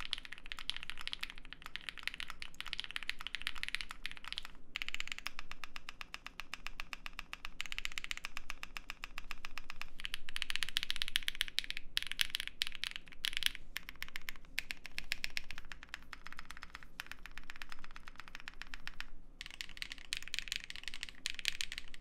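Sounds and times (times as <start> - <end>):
fast mechanical keyboard typing: 0.0 - 22.0.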